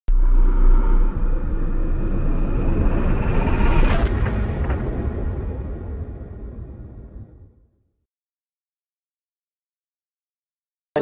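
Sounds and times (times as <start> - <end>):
whine rising in pitch: 0.1 - 7.5
deep rumble: 0.1 - 8.0.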